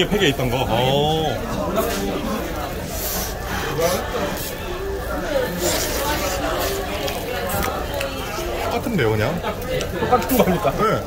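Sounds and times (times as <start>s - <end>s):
indistinct voices: 0.0s - 11.0s
room noise: 0.0s - 11.0s.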